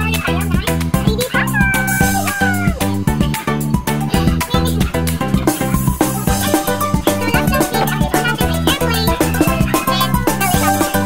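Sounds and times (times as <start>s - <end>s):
music with beat and plucked guitar: 0.0s - 11.0s
cat meowing: 1.4s - 3.0s.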